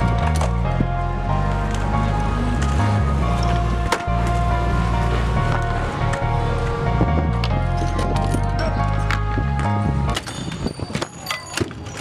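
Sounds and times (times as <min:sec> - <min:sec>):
bike knocks and clicks on concrete: 0:07.9 - 0:12.0.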